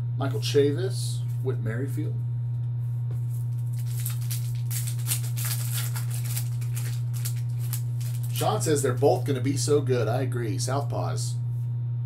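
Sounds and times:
low electrical hum: 0:00.0 - 0:12.0
wrapper crinkling: 0:03.3 - 0:09.3.

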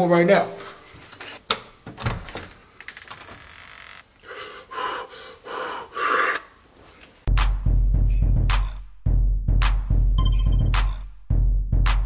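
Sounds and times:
man gasping: 0:04.2 - 0:06.5.

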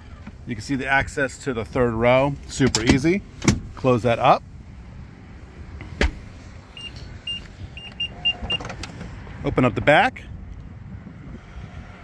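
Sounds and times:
car door shutting with a thud: 0:05.9 - 0:06.3
short high warning beeps: 0:06.8 - 0:08.6.

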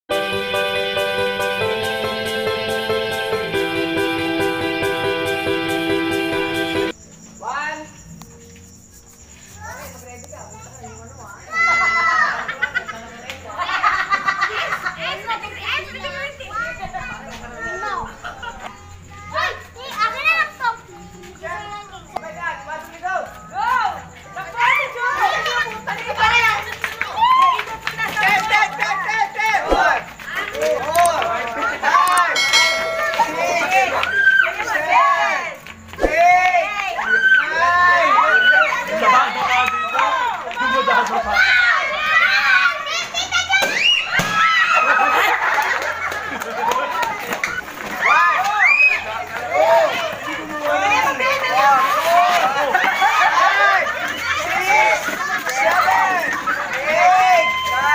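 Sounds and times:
children shouting excitedly: 0:11.5 - 0:12.5, 0:31.8 - 0:45.5, 0:46.1 - 0:57.9.

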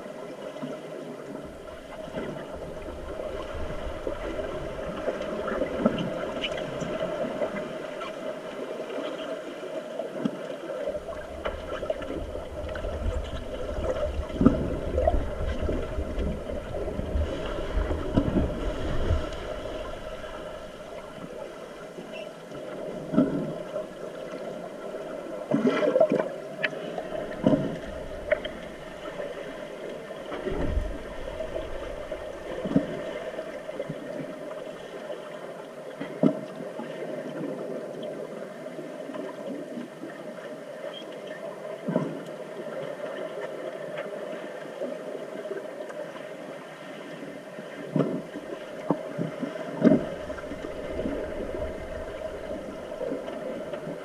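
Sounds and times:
water churned by fins: 0:00.0 - 0:54.0
dull underwater knocks: 0:11.4 - 0:21.4, 0:27.2 - 0:29.2, 0:48.9 - 0:54.0.

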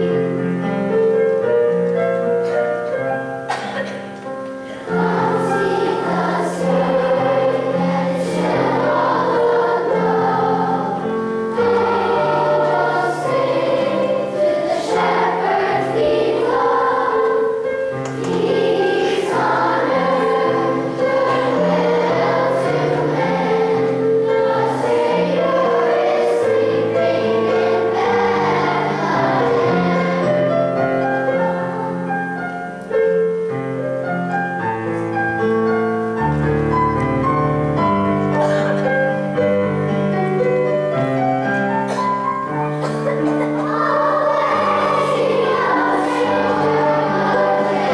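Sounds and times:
children's choir singing: 0:00.0 - 0:47.9
piano accompaniment: 0:00.0 - 0:47.9.

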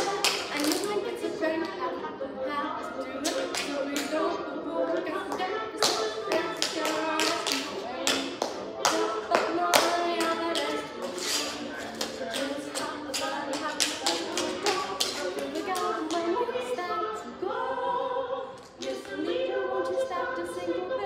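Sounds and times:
music playing: 0:00.0 - 0:21.0.

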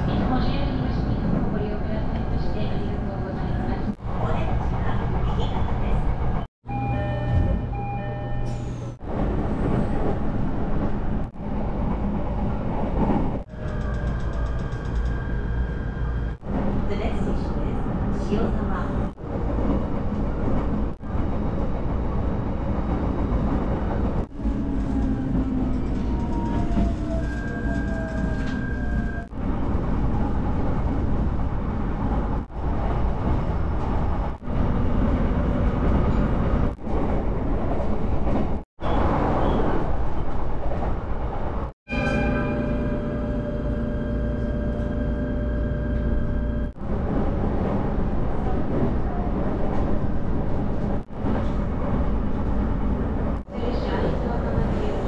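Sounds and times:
train wheels rumbling on rails: 0:08.4 - 0:41.8
train whine: 0:41.9 - 0:48.9.

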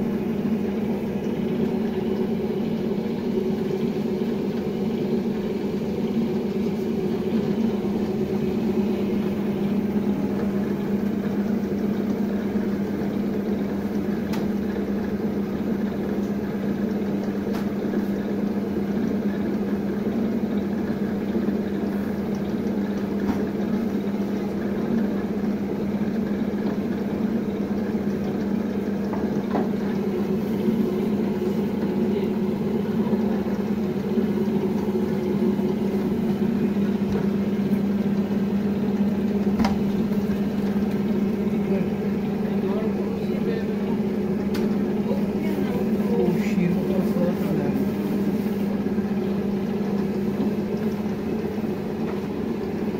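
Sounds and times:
machine motor humming: 0:00.0 - 0:52.9.

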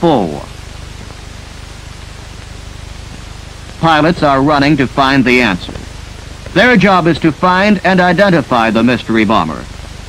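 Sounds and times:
man narrating: 0:00.0 - 0:00.5, 0:03.8 - 0:05.8, 0:06.5 - 0:09.7
faint low hum: 0:00.0 - 0:10.0
film soundtrack hiss: 0:00.0 - 0:10.0.

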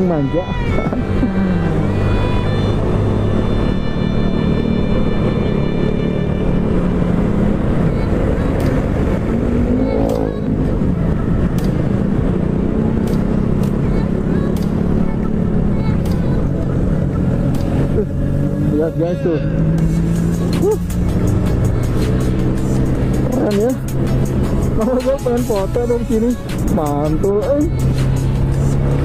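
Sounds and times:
motorcycle engine running: 0:00.0 - 0:29.0
road noise: 0:00.0 - 0:29.0.

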